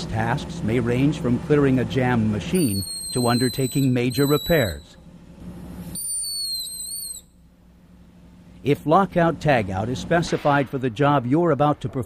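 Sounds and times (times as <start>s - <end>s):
low steady hum: 0.0s - 12.0s
high-pitched whistling squeal: 2.6s - 5.0s, 6.0s - 7.3s.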